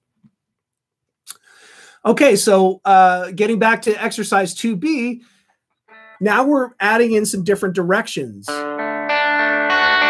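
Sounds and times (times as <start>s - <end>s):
mouth click: 1.2s - 1.5s
short in-breath: 1.3s - 2.0s
speech: 2.0s - 5.2s, 6.2s - 8.6s.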